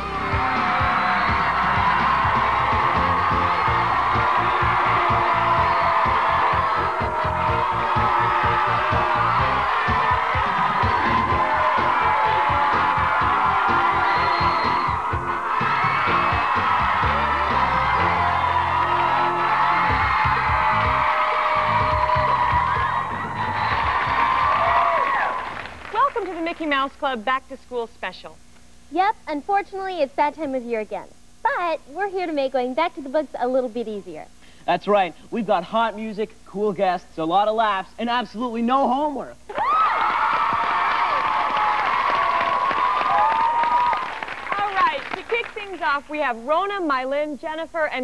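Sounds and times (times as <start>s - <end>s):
kids cheering and screaming: 0.0s - 25.6s, 39.5s - 44.8s
upbeat tv theme music: 0.0s - 27.0s.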